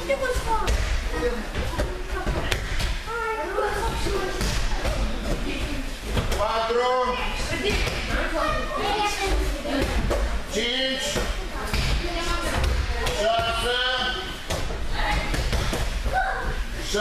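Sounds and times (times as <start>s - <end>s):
children chattering and calling out: 0.0s - 6.3s, 6.9s - 17.0s.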